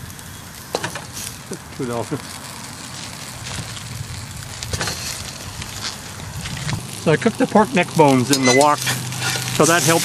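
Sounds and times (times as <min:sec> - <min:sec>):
crackle of frying: 0:00.0 - 0:10.0
meat and onions sizzling in a wok: 0:00.0 - 0:10.0.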